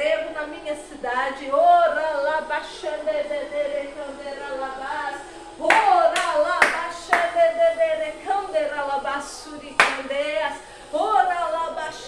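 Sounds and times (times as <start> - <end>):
woman chanting: 0.0 - 12.0
hand claps: 5.7 - 7.4, 9.8 - 10.2.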